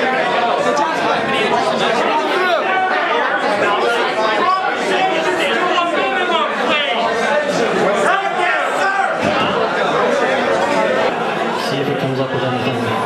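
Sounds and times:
crowd babble: 0.0s - 13.0s.

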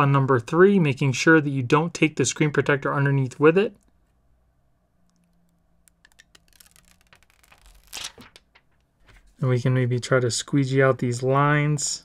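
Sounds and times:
plastic sheet being peeled: 5.9s - 9.3s
plastic crinkling and rustling: 5.9s - 9.4s.

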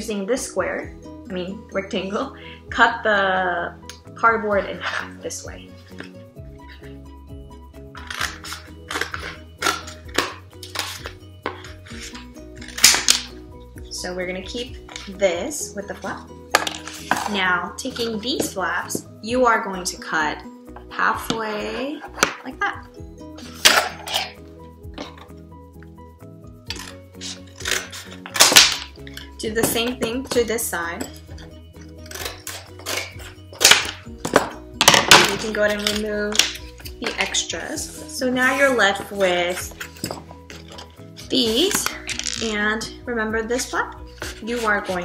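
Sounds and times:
background music: 0.0s - 45.0s
scissors cutting cardboard: 8.0s - 13.3s, 26.7s - 28.9s, 31.4s - 34.0s.

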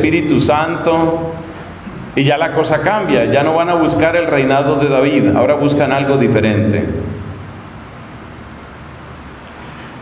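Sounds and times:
man's voice: 0.0s - 1.4s, 2.2s - 7.2s
room hum and hiss: 0.0s - 10.0s.

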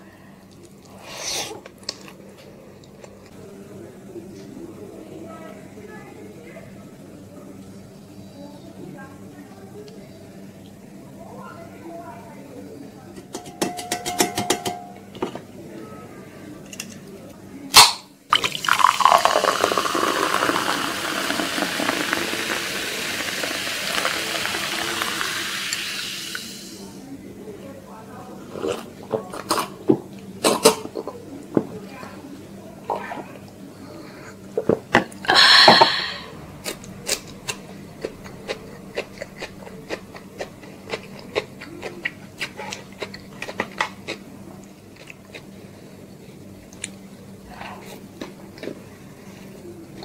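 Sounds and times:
soda fizzing as poured into glass: 18.3s - 26.8s
close chewing with mouth clicks: 36.6s - 45.5s.

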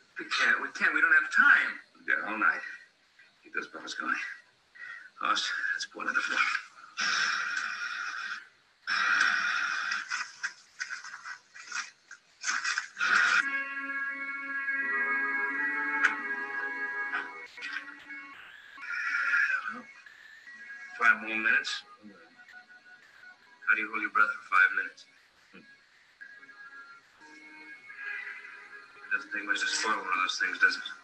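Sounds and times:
orchestral music: 13.4s - 22.0s, 27.2s - 30.6s.

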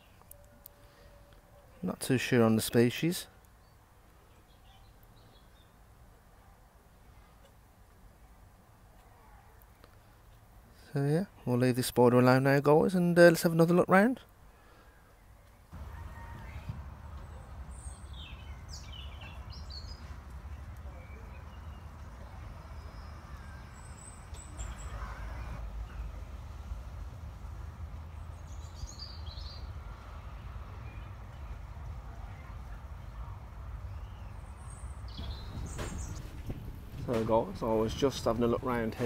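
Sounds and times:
small birds chirping: 1.8s - 5.9s, 14.6s - 26.2s, 28.0s - 29.8s, 33.8s - 39.0s
low outdoor rumble: 15.7s - 39.0s.

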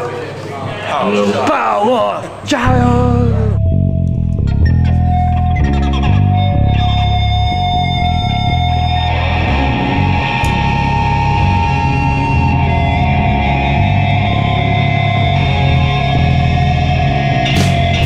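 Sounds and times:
rock music with electric guitar: 3.6s - 18.0s.

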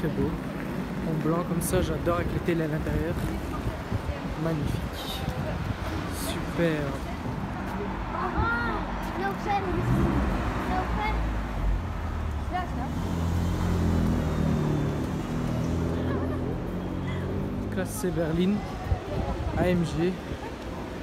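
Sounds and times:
passers-by chatter: 0.0s - 21.0s
street traffic: 0.0s - 21.0s.

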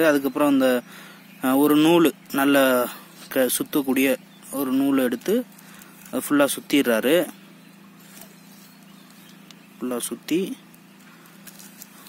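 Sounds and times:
faint steady hum: 0.0s - 12.0s
person speaking: 6.1s - 7.4s.

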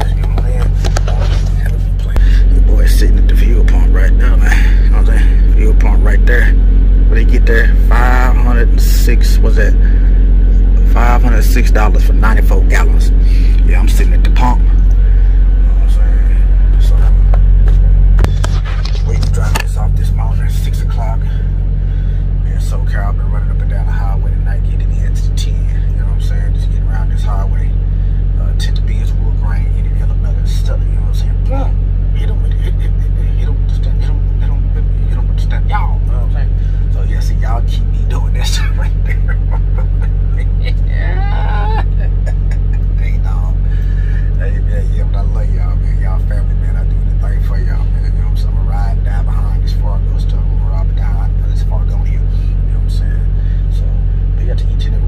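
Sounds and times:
indistinct voice: 0.0s - 17.4s, 28.4s - 55.0s
truck engine idling: 0.0s - 41.1s, 41.7s - 55.0s.

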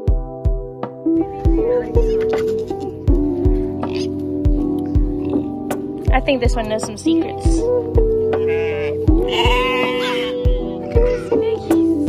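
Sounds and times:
background music with steady beat: 0.0s - 12.0s
goat bleating: 1.5s - 2.8s, 8.4s - 11.7s.

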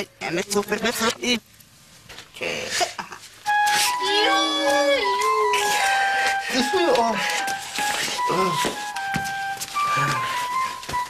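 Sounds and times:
wavering wail: 3.5s - 8.8s, 9.7s - 11.0s
shrill off-key whistling melody: 3.5s - 11.0s.

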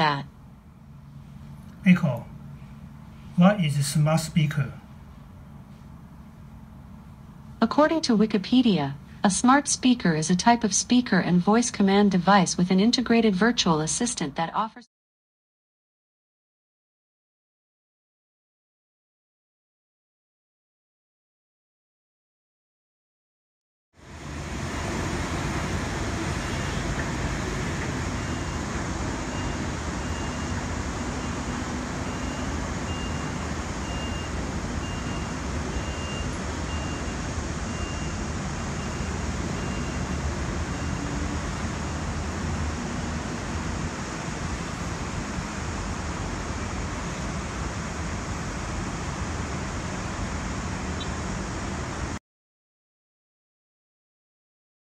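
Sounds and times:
road traffic rumble: 24.0s - 52.2s
faint high beep: 31.2s - 41.1s.

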